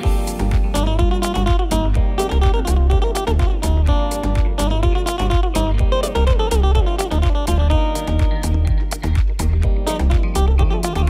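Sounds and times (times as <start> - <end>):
deep house music: 0.0 - 11.0.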